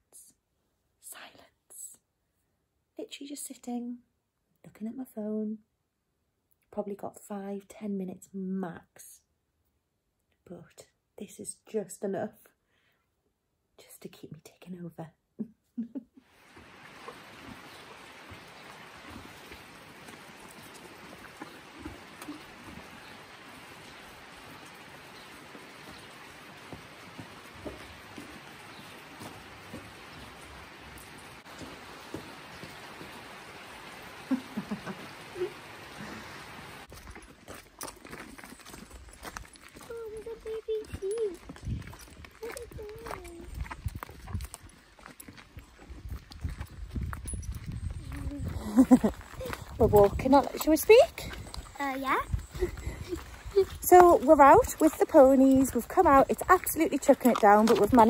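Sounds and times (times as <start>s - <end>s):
hooves clopping on mud: 16.3s - 58.0s.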